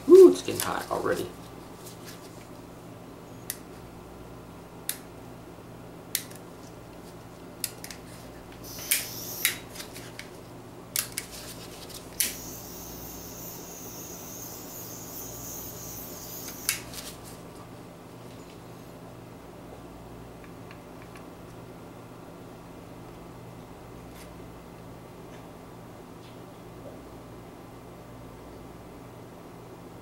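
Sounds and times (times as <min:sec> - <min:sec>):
steady low hum: 0:08.2 - 0:20.2
torch flame hissing: 0:08.6 - 0:09.7, 0:12.2 - 0:16.8
torch igniter clicks: 0:08.6 - 0:09.7, 0:12.2 - 0:12.5.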